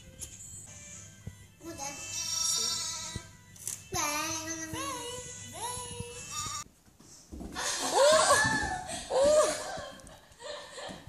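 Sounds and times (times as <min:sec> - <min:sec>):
background music: 0:00.0 - 0:06.7.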